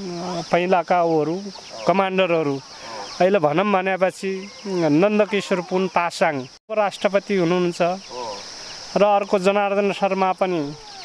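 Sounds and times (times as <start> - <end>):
high-pitched insect drone: 0.0 - 11.0.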